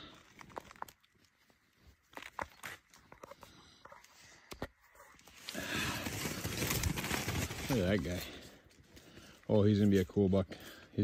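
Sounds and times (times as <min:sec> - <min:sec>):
rustling: 0:00.0 - 0:09.4
crunching in snow: 0:05.1 - 0:08.4.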